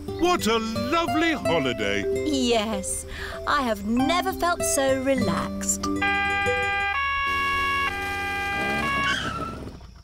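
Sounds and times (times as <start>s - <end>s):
police two-tone siren: 6.0s - 9.7s.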